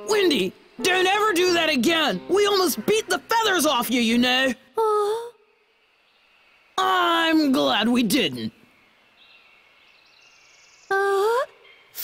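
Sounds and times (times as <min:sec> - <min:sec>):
faint soundtrack music: 0:00.0 - 0:09.9.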